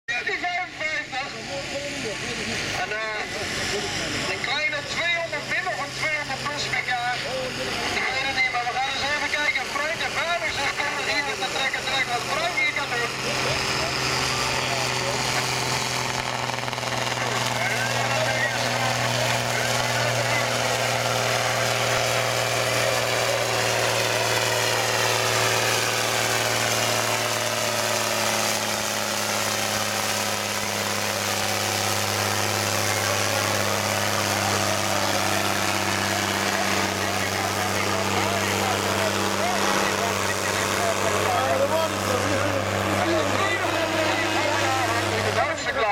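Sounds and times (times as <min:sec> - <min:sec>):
onlookers' voices: 0:00.1 - 0:45.9
tractor diesel engine under load: 0:00.1 - 0:45.9.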